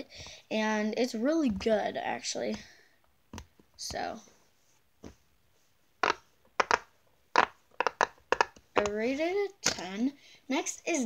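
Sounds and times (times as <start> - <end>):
fidget toy bubbles popping: 6.0 - 9.0.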